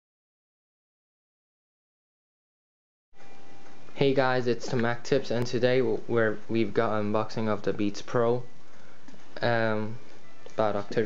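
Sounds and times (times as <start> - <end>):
room noise hiss: 3.2 - 11.0.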